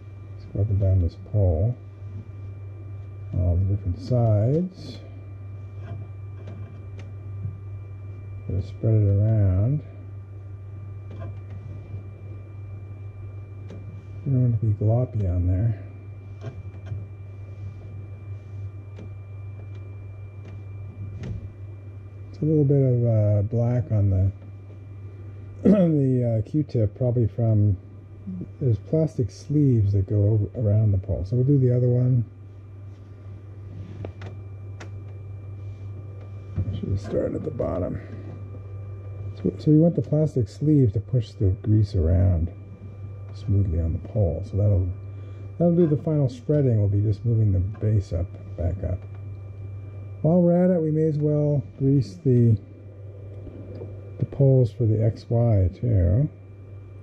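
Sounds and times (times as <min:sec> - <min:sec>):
idle printer hum with whine: 0:00.0 - 0:57.0.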